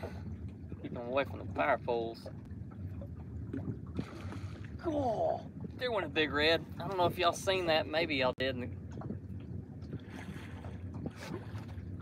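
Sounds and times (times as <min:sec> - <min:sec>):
boat engine low hum: 0:00.0 - 0:12.0
water noise: 0:00.0 - 0:12.0
wind on microphone: 0:00.0 - 0:12.0.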